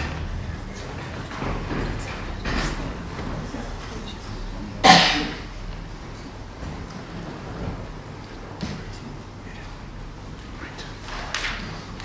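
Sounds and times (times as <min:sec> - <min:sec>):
low rumbling room noise: 0:00.0 - 0:12.0
faint rustling: 0:05.6 - 0:12.0.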